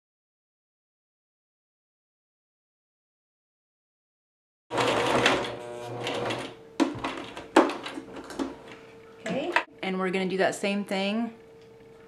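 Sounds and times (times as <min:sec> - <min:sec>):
sewing machine running: 0:04.7 - 0:06.6.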